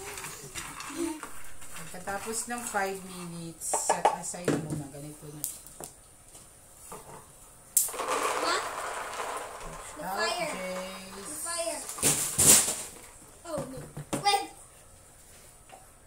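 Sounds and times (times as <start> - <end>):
peanuts rattling into container: 7.8 - 12.9
child's voice: 8.4 - 8.7, 10.0 - 12.0, 13.4 - 14.6.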